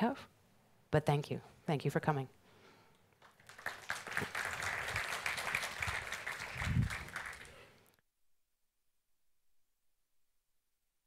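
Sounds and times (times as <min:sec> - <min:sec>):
audience applause: 0:03.2 - 0:07.8.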